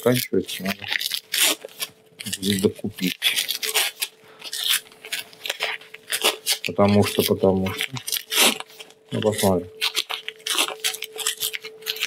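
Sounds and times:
person speaking: 0.0s - 1.0s, 2.2s - 3.5s, 6.7s - 8.1s, 9.1s - 9.8s
masking tape pulled off roll: 0.0s - 12.0s.

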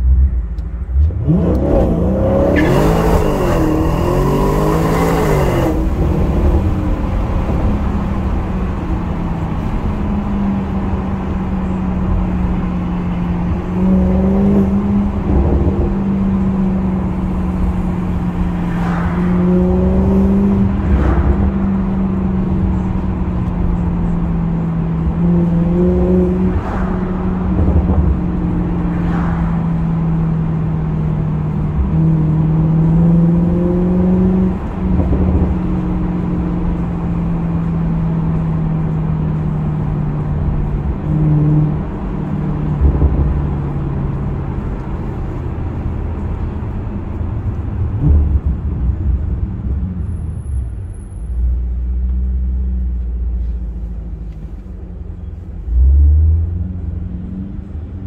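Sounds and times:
car engine drone from inside cabin: 0.0s - 58.0s.

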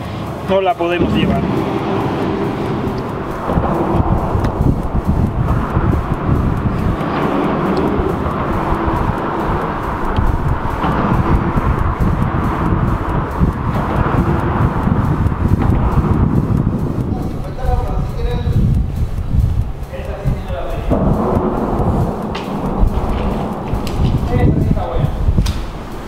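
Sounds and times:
music playing: 0.0s - 26.0s
wind buffeting microphone: 0.0s - 26.0s.

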